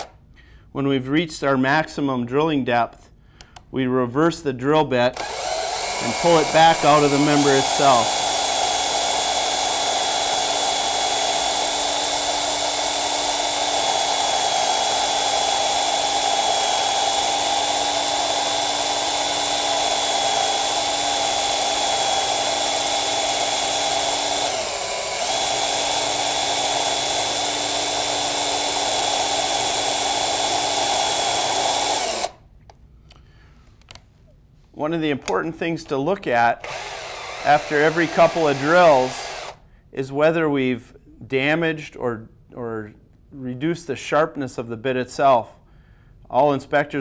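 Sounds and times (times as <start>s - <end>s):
microdrill whining: 5.1s - 32.4s, 36.6s - 39.6s.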